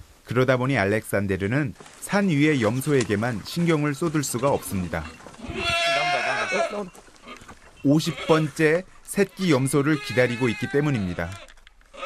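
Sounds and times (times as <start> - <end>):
goat bleating: 4.4 - 12.0.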